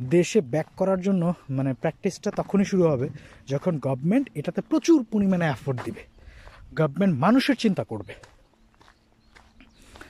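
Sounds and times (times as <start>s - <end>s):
people talking: 0.0s - 6.1s, 6.7s - 8.3s
footsteps on dirt track: 0.0s - 10.0s.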